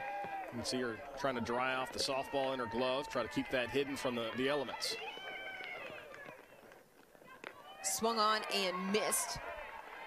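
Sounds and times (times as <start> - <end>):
quiet ballpark background: 0.0 - 10.0.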